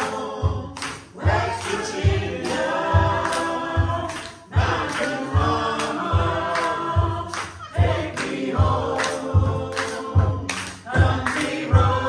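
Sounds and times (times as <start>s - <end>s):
handclaps on the beat: 0.0s - 12.0s
voices singing: 0.0s - 12.0s.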